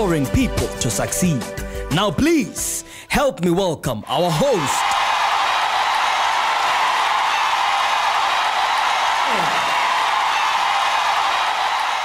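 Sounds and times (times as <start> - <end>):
studio audience applauding: 4.1 - 12.0.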